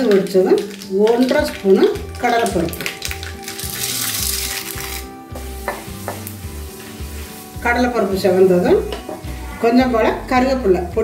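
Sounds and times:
lentils sizzling in hot oil: 0.0 - 9.8.

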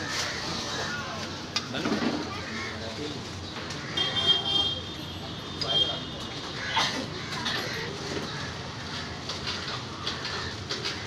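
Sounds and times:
people talking: 0.2 - 8.5.

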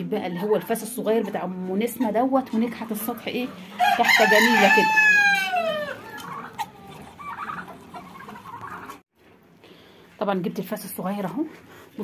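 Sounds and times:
chicken clucking: 0.3 - 9.0
rooster crowing: 3.8 - 6.2.

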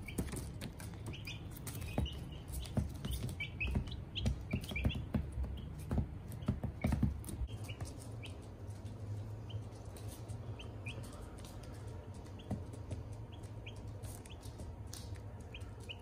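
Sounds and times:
beaks pecking on paper: 0.0 - 16.0
chicks peeping: 0.0 - 16.0.

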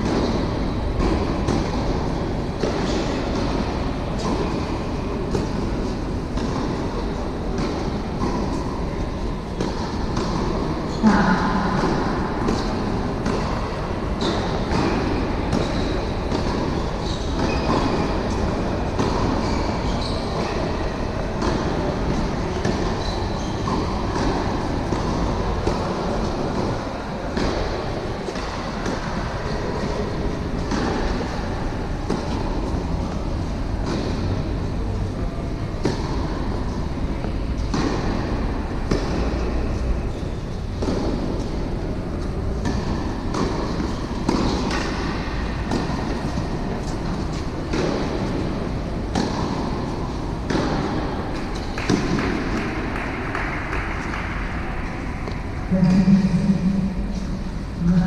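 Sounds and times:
low rumble of hall: 0.0 - 58.0
tennis ball strikes and bounces: 0.0 - 58.0.

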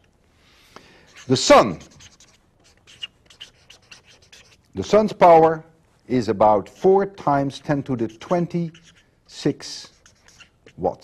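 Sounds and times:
scratchy writing on a board: 1.0 - 5.5, 7.6 - 11.0.

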